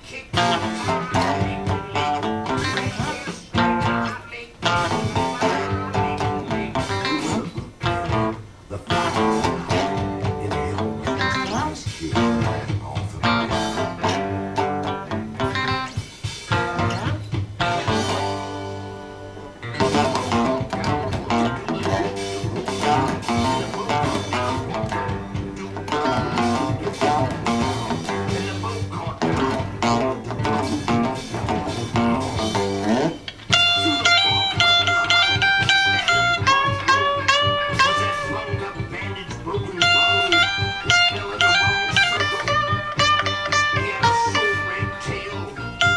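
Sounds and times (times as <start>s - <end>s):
electric guitar blues-rock riff: 0.0s - 45.9s.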